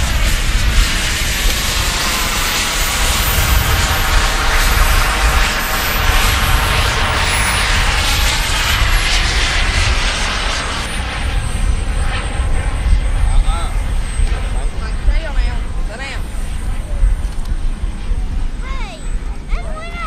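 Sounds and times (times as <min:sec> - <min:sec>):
high turbine whine: 0:00.0 - 0:20.0
model jet turbine rushing: 0:00.0 - 0:20.0.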